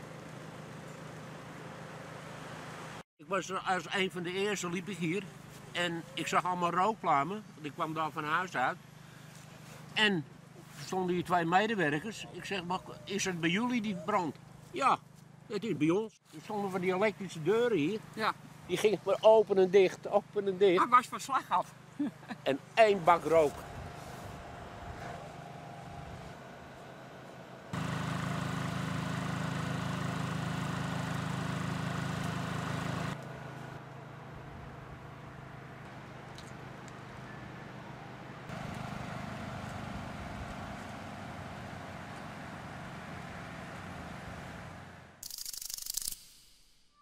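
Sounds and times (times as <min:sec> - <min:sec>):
low mechanical hum: 0:21.7 - 0:46.9.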